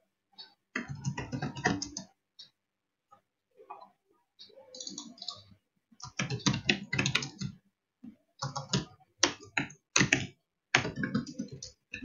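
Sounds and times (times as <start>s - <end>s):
typing on computer keyboard: 0.8s - 2.1s, 6.0s - 7.6s, 8.4s - 12.0s.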